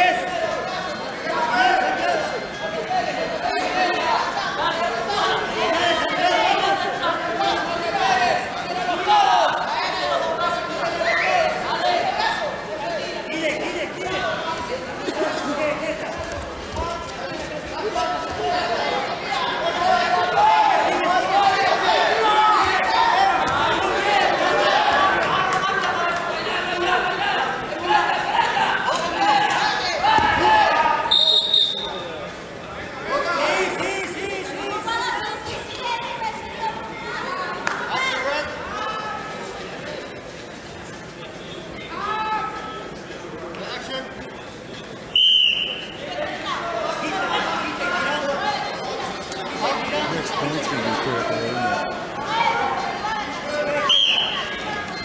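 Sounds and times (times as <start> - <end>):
crowd chatter: 0.0 - 55.0
voices in a hall: 0.0 - 55.0
referee's whistle blast: 31.1 - 32.0, 45.2 - 46.0.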